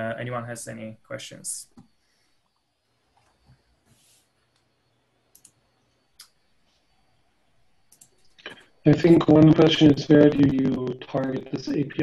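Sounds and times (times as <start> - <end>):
man speaking: 0.0 - 1.8, 8.4 - 12.0
faint scattered clicks: 5.3 - 5.6, 7.9 - 12.0.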